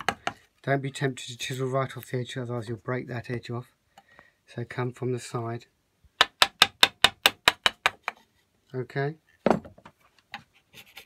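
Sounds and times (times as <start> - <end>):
chisel tapping through wood: 0.0 - 0.4, 6.2 - 8.2.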